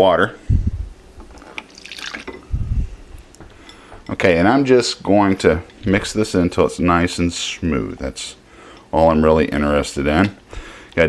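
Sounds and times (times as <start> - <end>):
water trickling into glass bowl: 1.7 - 2.5.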